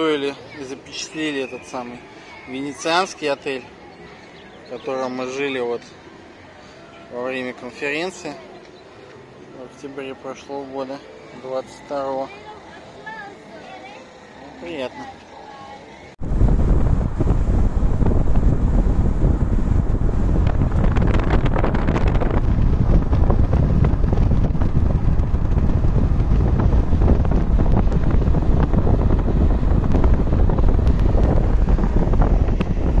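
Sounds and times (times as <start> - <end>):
wind and road noise in moving car: 14.7 - 33.0.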